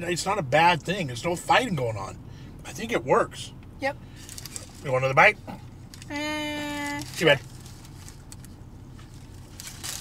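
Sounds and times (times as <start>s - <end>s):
low hum in car: 0.0s - 10.0s
paper wrapper crinkling: 5.9s - 10.0s.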